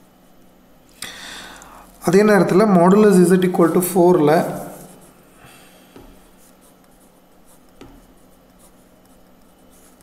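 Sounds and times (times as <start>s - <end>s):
marker scratching on paper: 6.0s - 10.0s.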